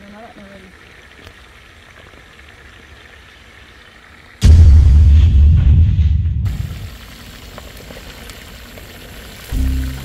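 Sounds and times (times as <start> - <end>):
fish sizzling in hot oil: 6.8 - 10.0.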